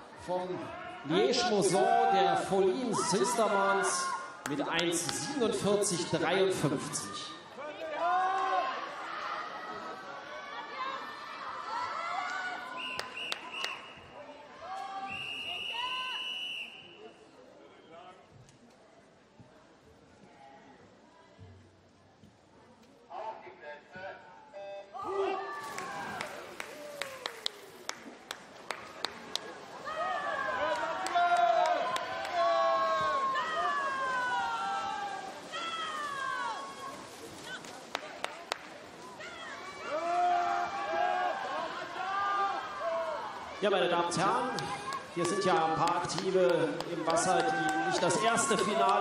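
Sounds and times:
crowd chatter: 0:00.0 - 0:49.0
spectators yelling: 0:00.5 - 0:16.5, 0:29.1 - 0:37.7, 0:39.1 - 0:49.0
referee's whistle blasts: 0:15.0 - 0:17.1.

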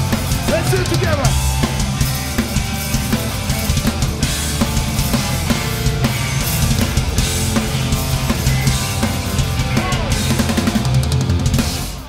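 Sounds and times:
bass guitar: 0:00.0 - 0:12.0
electric guitars: 0:00.0 - 0:12.0.

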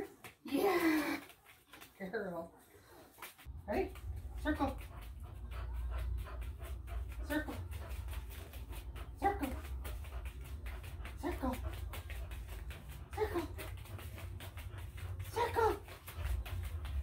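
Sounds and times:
steady low hum: 0:03.5 - 0:17.0.

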